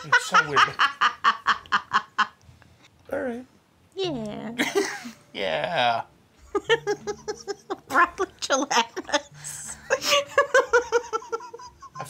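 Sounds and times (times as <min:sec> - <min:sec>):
person laughing: 0:06.5 - 0:08.2, 0:09.0 - 0:12.0.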